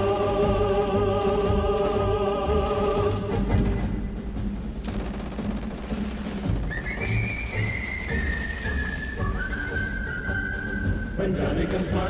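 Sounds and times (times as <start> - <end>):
rapid gunfire rattle: 0.0 - 9.2.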